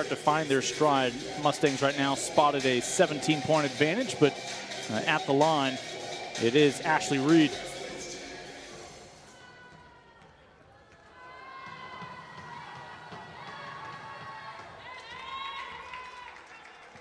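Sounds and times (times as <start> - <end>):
murmur of spectators: 0.0 - 17.0.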